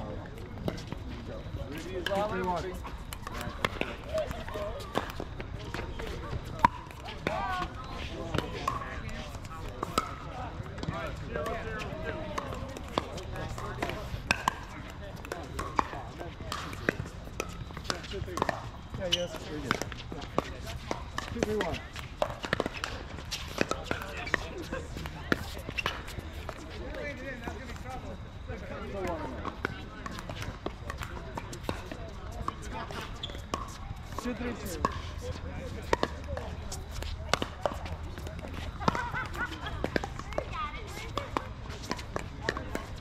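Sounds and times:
players' voices: 0:00.0 - 0:43.0
ball bouncing on hard court: 0:12.4 - 0:24.4.

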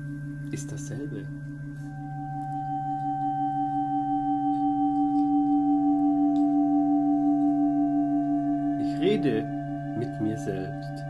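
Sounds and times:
layered ringing drone: 0:00.0 - 0:11.0.

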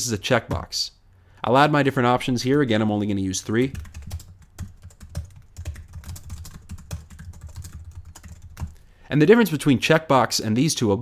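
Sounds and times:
typing on computer keyboard: 0:03.7 - 0:08.8.

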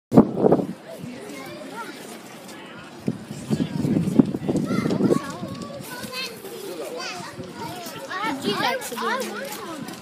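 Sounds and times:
children chattering and calling: 0:00.2 - 0:10.0.

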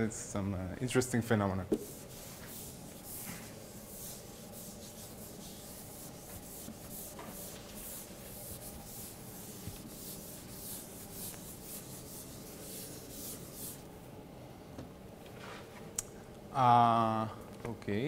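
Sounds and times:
eraser rubbing on chalkboard: 0:01.8 - 0:13.9.

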